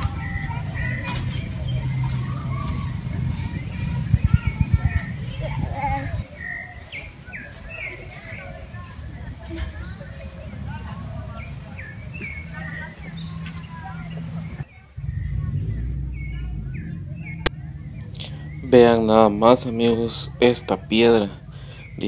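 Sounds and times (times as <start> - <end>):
wind rumble on microphone: 0.0 - 8.2, 11.0 - 18.1
birds chirping: 0.0 - 22.0.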